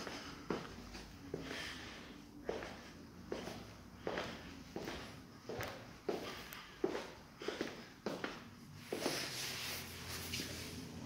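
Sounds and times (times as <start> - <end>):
footsteps on wooden floor: 2.5 - 9.3.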